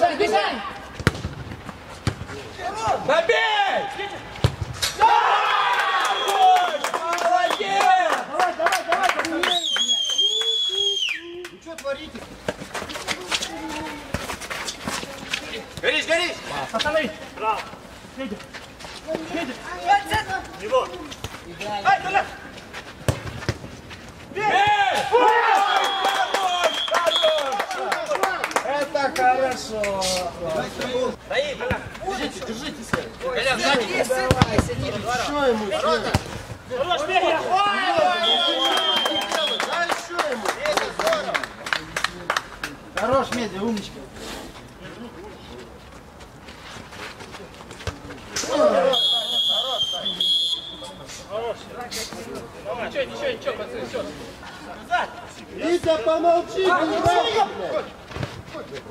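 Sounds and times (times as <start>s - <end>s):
ball being kicked: 1.0s - 2.4s, 4.4s - 4.9s, 23.0s - 23.7s
players shouting: 2.3s - 9.5s, 24.3s - 29.6s, 31.6s - 40.1s
men shouting and cheering: 2.5s - 9.6s, 24.3s - 29.7s, 36.7s - 41.3s
high whistle: 9.5s - 11.4s, 25.7s - 27.4s, 38.1s - 39.7s, 48.8s - 51.0s.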